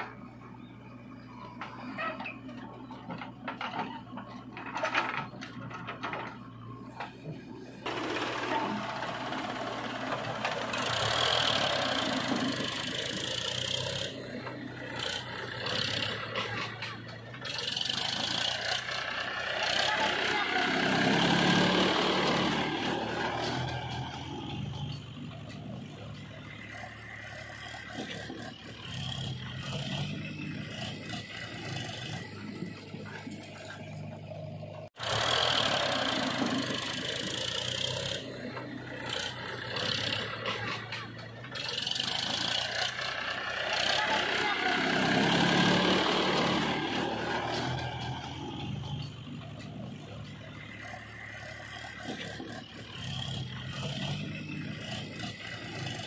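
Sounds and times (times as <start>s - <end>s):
diesel tractor engine running: 0.0s - 56.0s
faint voices: 19.6s - 21.2s, 43.7s - 45.2s.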